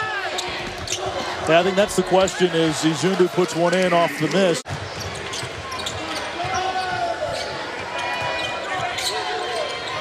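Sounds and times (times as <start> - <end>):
sneakers squeaking: 0.2 - 1.4, 4.7 - 10.0.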